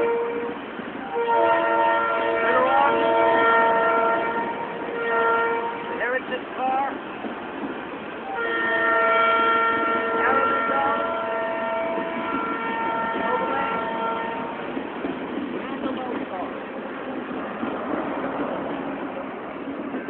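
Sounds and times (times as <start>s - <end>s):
train horn blasts: 0.0s - 6.2s, 8.2s - 14.7s
train cars rumbling on rails: 0.0s - 20.0s.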